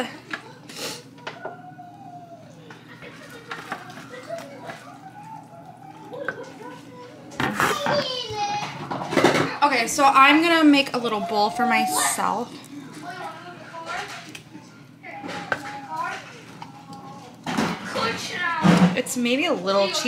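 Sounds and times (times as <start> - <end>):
children's voices: 0.3 - 9.6
child talking loudly: 7.7 - 8.8.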